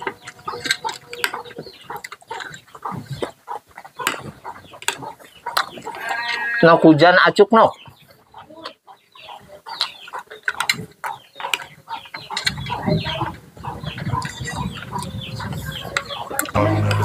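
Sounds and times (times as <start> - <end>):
chickens clucking: 0.0 - 17.0
background music: 16.5 - 17.0.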